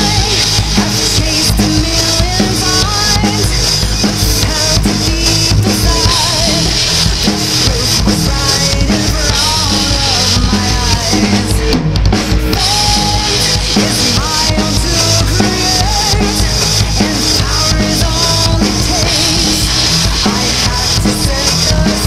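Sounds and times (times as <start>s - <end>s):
acoustic drum kit playing: 0.0s - 22.0s
recorded metal song with singing: 0.0s - 22.0s.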